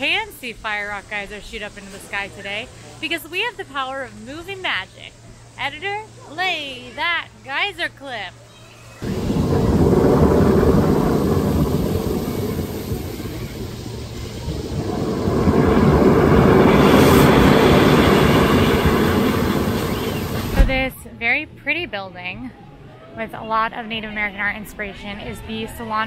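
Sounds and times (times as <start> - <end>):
geyser spraying water: 9.0 - 20.8
short thump: 20.3 - 20.9.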